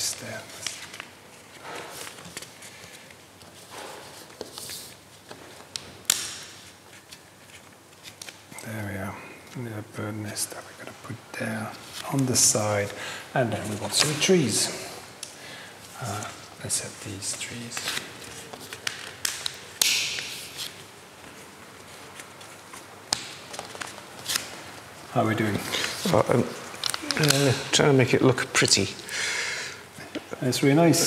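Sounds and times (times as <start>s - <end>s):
paper crackling: 0.0s - 8.6s, 13.6s - 14.3s, 16.0s - 27.7s.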